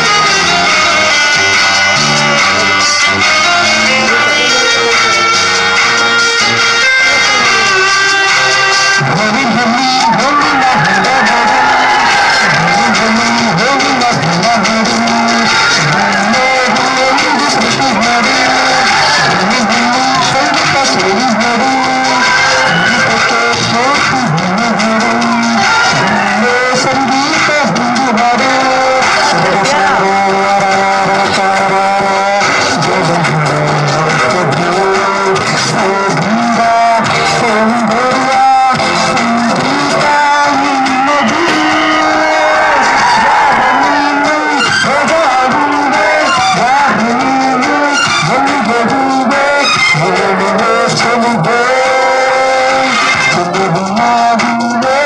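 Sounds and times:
backing music: 0:00.0 - 0:55.0
man singing into a microphone: 0:00.0 - 0:55.0.

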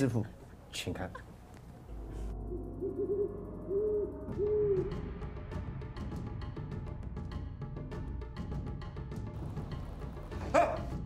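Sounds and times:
owl hooting: 0:02.4 - 0:05.2, 0:10.3 - 0:11.0.

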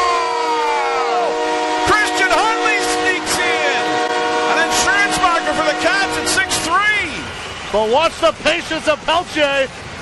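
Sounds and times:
crowd cheering and yelling: 0:00.0 - 0:09.7
goal horn chord: 0:01.2 - 0:06.8.

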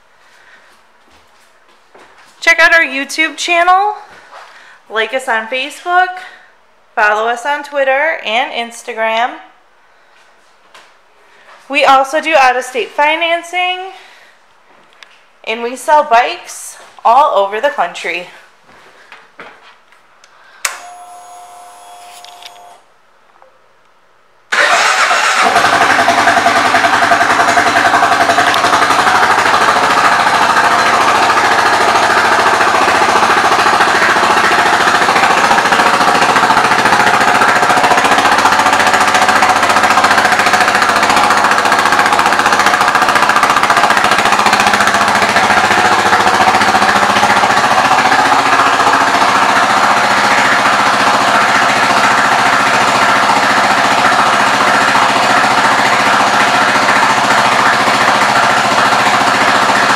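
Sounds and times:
motorcycle engine idling: 0:24.6 - 0:59.9.

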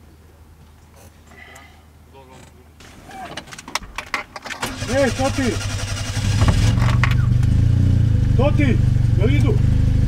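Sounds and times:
car engine running from inside: 0:06.2 - 0:10.0.

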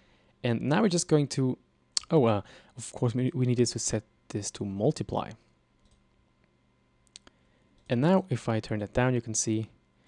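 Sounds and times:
faint low hum: 0:00.0 - 0:10.0
man speaking: 0:00.4 - 0:05.4, 0:07.9 - 0:09.8
computer mouse clicking: 0:05.8 - 0:06.0.

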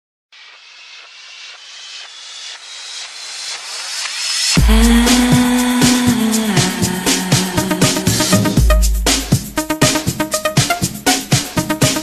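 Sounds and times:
hissing noise sweep: 0:00.3 - 0:10.3.

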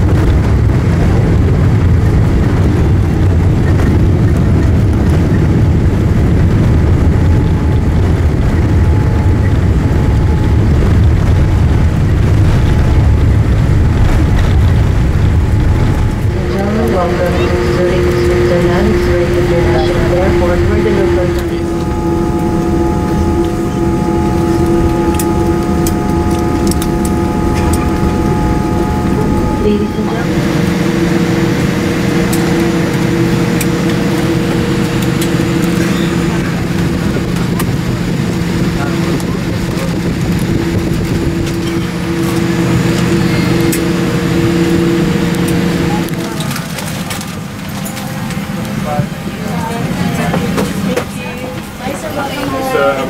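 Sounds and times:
higher humming tones: 0:00.0 - 0:53.0
jet engines idling: 0:00.0 - 0:53.0.

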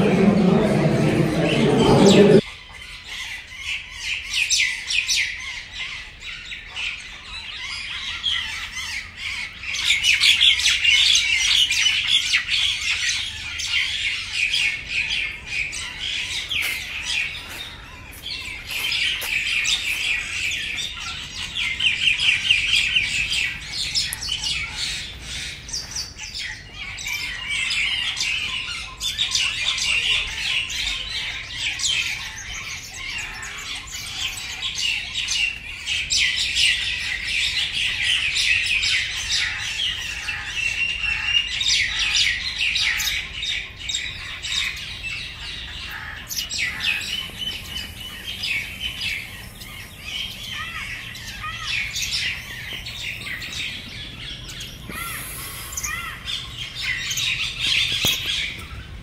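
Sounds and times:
birds squawking and chirping: 0:00.0 - 0:59.0.

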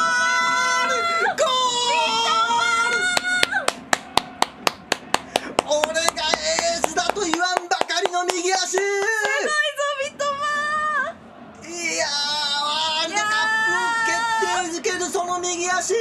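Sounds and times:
rapid hand clapping: 0:03.2 - 0:09.5
excited yelling: 0:12.0 - 0:15.1.

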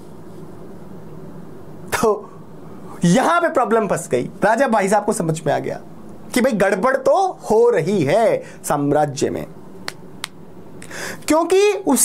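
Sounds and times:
low room hum: 0:00.0 - 0:12.0
person speaking: 0:01.9 - 0:10.0, 0:11.1 - 0:12.0.

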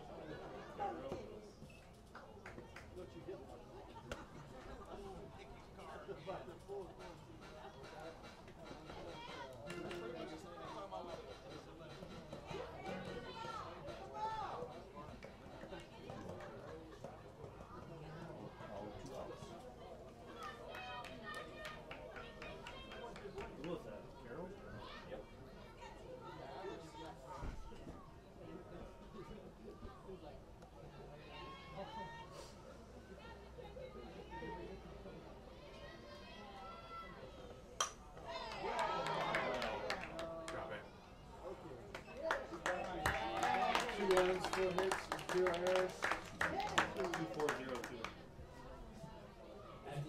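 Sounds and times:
spectator chatter: 0:00.0 - 0:50.0.

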